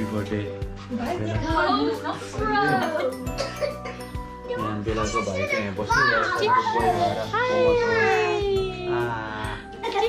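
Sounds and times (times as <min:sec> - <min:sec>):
music playing: 0:00.0 - 0:10.0
children calling excitedly: 0:04.4 - 0:09.1.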